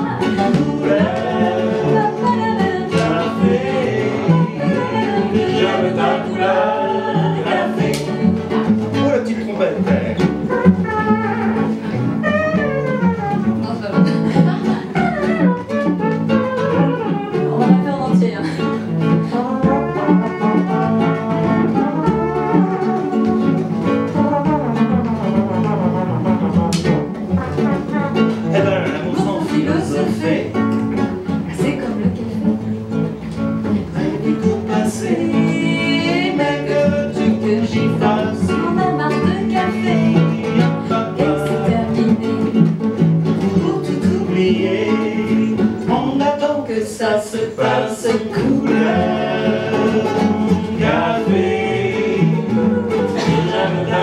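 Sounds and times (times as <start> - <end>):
person singing: 0.0 - 8.6, 28.4 - 30.5, 33.8 - 42.7, 43.4 - 54.0
classical guitar: 0.0 - 54.0
double bass: 0.0 - 54.0.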